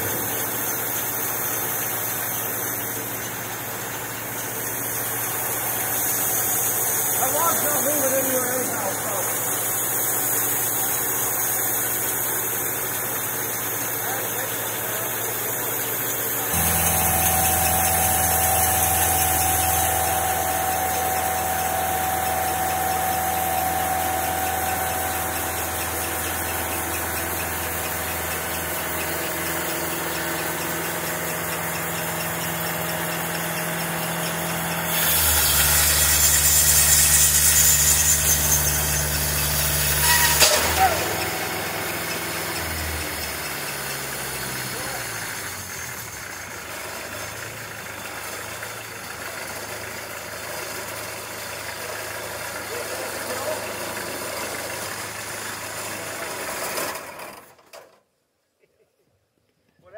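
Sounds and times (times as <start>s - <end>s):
rushing saw noise: 0.0s - 47.4s
sawmill engine running: 0.0s - 57.7s
sharp metal clank: 39.9s - 41.9s.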